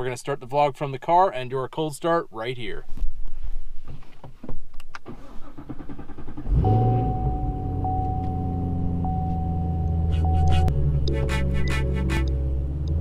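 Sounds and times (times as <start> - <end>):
car engine starting and idling: 4.9 - 13.0
high-pitched tone: 6.6 - 12.4.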